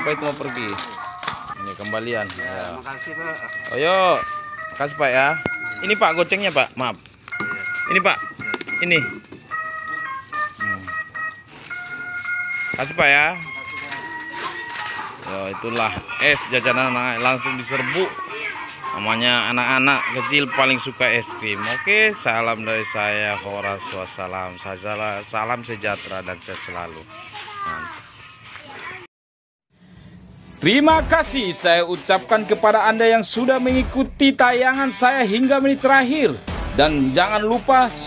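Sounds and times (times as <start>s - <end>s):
children playing and chattering: 0.0s - 29.1s
electronic jingle melody: 1.6s - 17.8s.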